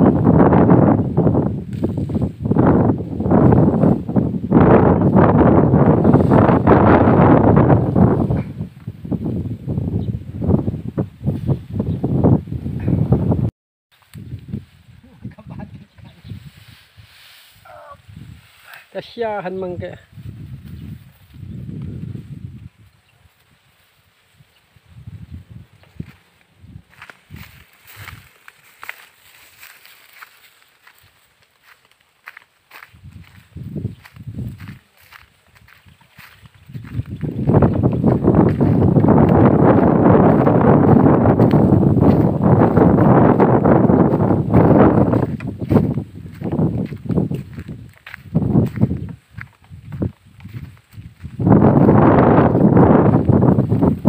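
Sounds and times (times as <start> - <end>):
cut grass rustling: 1.5 - 4.2, 5.0 - 8.2, 16.2 - 22.2, 25.7 - 54.0
footsteps on dirt path: 25.5 - 54.0.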